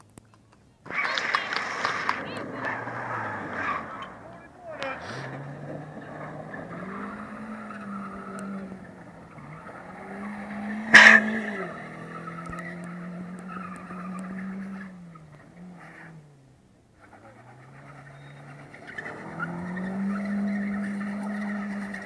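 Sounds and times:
tyres squealing on tarmac: 0.8s - 16.3s, 17.0s - 22.0s
car engine at high revs: 0.9s - 22.0s
sharp bang: 10.7s - 11.6s.

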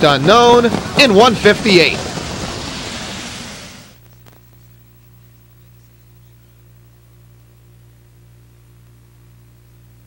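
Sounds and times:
rushing broadcast background noise: 0.0s - 8.2s.

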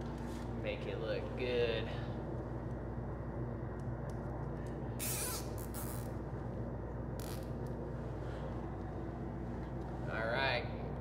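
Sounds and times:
cooler fan hum: 0.0s - 11.0s
zip ties ratcheting tight: 5.0s - 6.1s.

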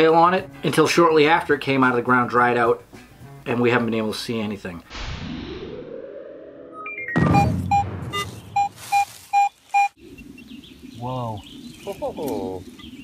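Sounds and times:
outdoor ambience: 4.7s - 13.0s
rising synth sweep: 4.9s - 8.2s
electronic hit: 4.9s - 8.6s
short beeps in pairs: 7.0s - 10.0s.

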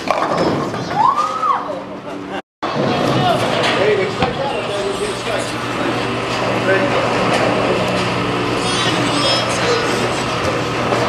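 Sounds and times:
bowling pins clattering: 0.0s - 1.3s
bowling alley noise with voices: 0.0s - 11.0s
person crying out: 8.6s - 10.0s.

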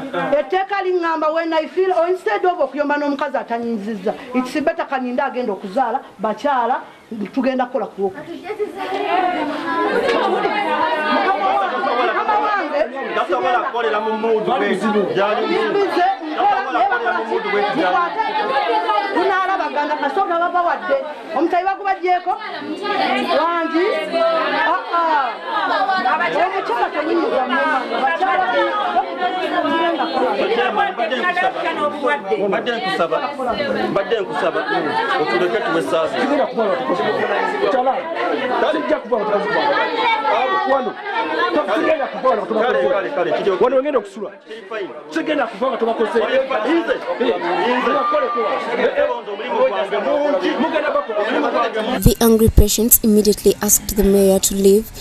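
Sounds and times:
people arguing loudly: 0.0s - 44.1s, 44.8s - 52.1s
woman's voice: 51.9s - 55.0s.

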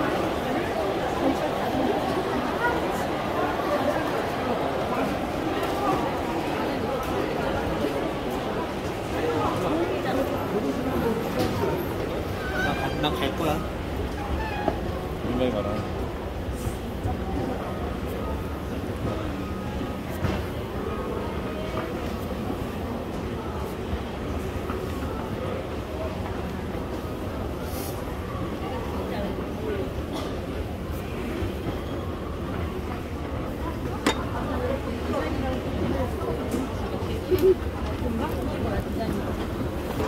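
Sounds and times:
people talking: 0.0s - 13.7s, 15.2s - 40.0s.

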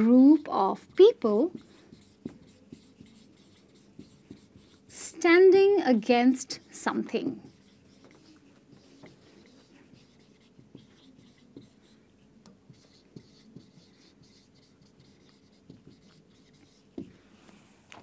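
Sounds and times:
marker pen on whiteboard: 0.0s - 18.0s.

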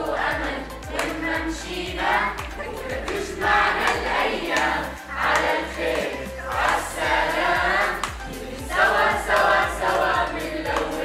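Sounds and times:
backing music with steady beat: 0.0s - 11.0s
children singing: 0.0s - 11.0s.

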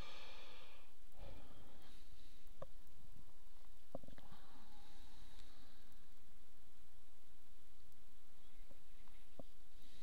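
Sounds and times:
low background noise: 0.0s - 10.0s
faint clicks: 2.4s - 4.4s, 5.2s - 6.3s.

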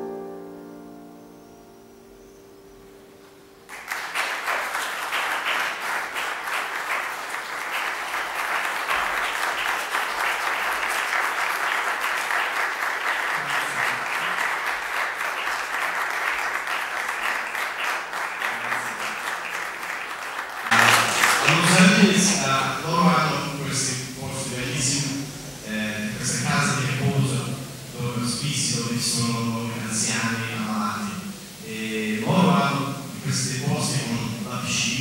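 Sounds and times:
piano note: 0.0s - 3.9s
audience applauding: 3.7s - 35.0s.

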